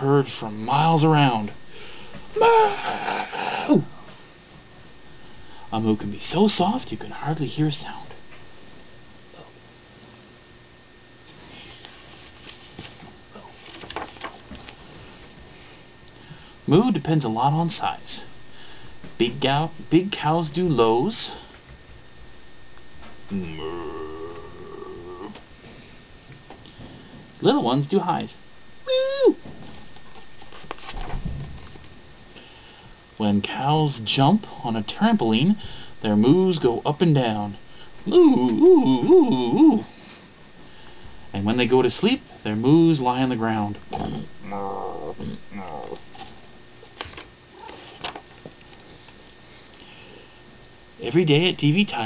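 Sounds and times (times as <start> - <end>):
person imitating cow moo: 23.3 - 25.4, 43.9 - 46.0.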